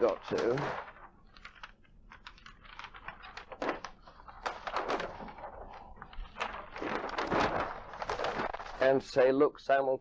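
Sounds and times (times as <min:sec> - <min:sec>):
papers being sorted by hand: 0:00.0 - 0:09.3.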